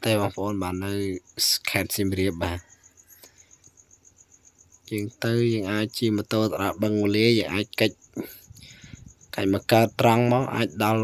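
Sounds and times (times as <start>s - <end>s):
man talking: 0.0s - 2.7s, 4.9s - 8.6s, 9.3s - 11.0s
insect chirping: 0.0s - 11.0s.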